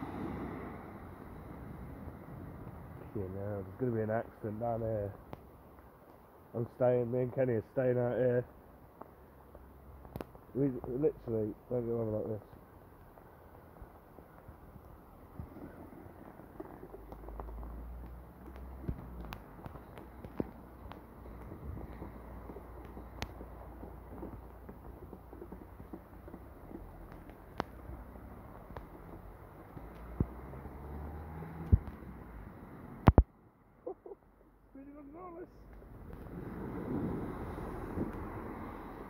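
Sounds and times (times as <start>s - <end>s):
sharp rain ticks: 1.5s - 33.3s, 35.7s - 39.0s.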